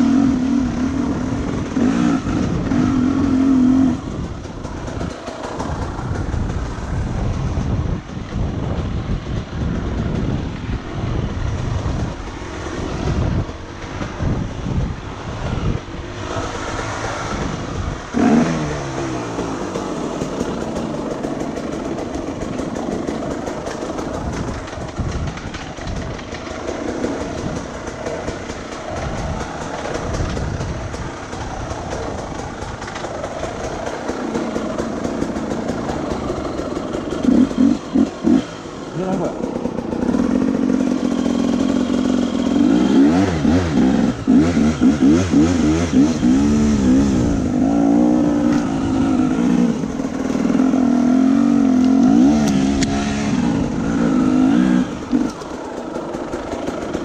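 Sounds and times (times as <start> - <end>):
dirt bike engine revving: 0.0 - 4.3, 16.0 - 24.8, 25.9 - 57.0.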